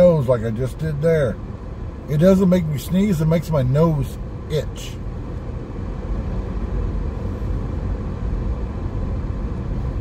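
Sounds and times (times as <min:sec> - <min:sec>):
engine and tyre hum: 0:00.0 - 0:10.0.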